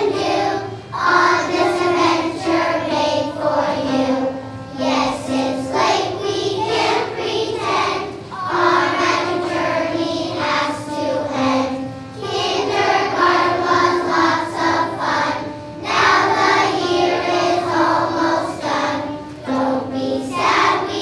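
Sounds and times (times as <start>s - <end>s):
children singing together: 0.0s - 21.0s.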